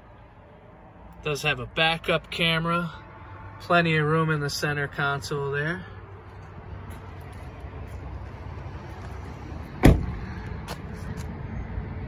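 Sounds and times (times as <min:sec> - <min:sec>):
car door shutting: 0:09.8 - 0:10.2.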